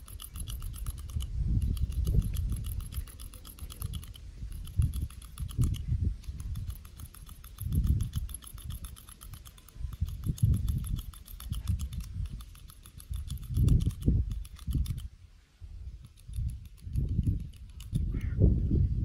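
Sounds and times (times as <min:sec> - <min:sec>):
hand hair clipper clicking: 0:00.0 - 0:15.1, 0:16.0 - 0:18.3.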